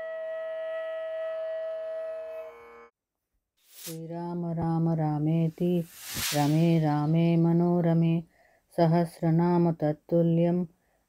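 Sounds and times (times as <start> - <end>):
flute holding long note: 0.0 - 2.9.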